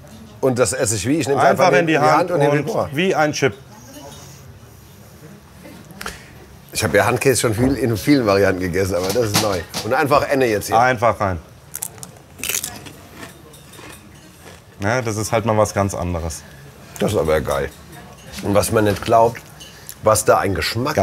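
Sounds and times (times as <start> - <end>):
murmur of diners' voices: 0.0 - 21.0
chip crunch when bitten: 11.7 - 14.0.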